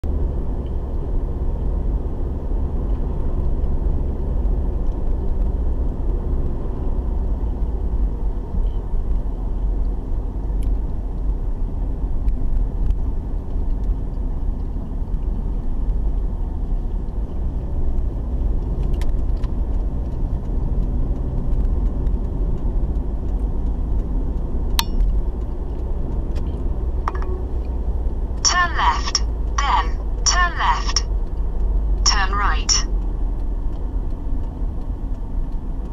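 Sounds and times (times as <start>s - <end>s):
car engine and tyre rumble: 0.0s - 28.5s, 29.2s - 30.3s, 31.0s - 32.1s, 32.8s - 35.9s.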